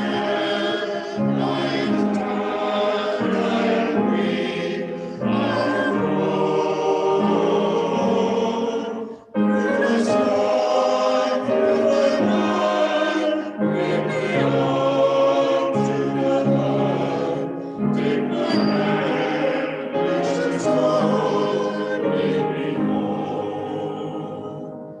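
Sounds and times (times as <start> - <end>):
mixed choir singing a hymn: 0.0 - 25.0.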